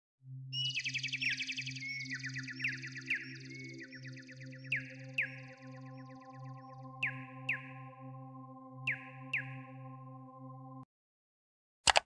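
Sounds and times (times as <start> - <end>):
rapid chirping trills: 0.6 - 8.1.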